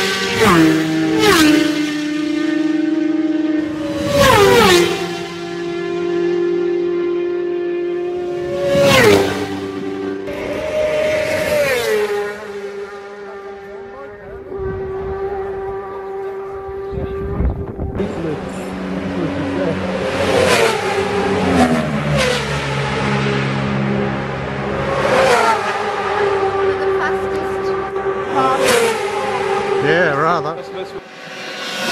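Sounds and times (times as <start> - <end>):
racing motorcycles passing: 0.0 - 31.9.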